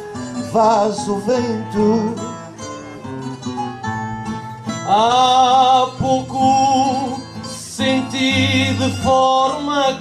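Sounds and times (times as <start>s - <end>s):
plucked acoustic guitar: 0.0s - 10.0s
man singing: 0.1s - 2.5s, 4.7s - 10.0s.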